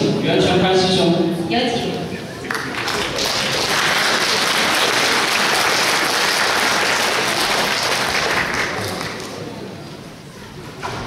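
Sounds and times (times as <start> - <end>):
audience applauding: 2.4 - 9.6.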